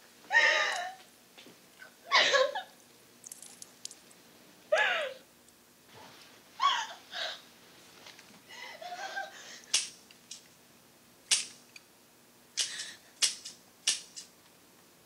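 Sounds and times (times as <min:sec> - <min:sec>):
sharp cracks: 0:09.7 - 0:10.0, 0:11.3 - 0:11.6, 0:12.6 - 0:14.3.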